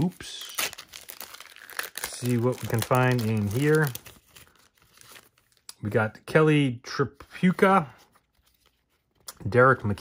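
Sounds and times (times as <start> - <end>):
person speaking: 0.0 - 0.8, 1.6 - 4.1
wrapper crinkling and tearing: 0.0 - 5.7.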